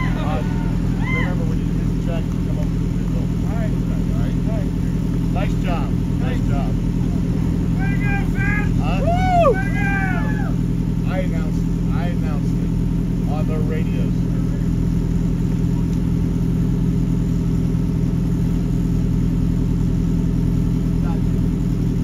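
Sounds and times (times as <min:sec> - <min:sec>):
race car engine idling: 0:00.0 - 0:22.0.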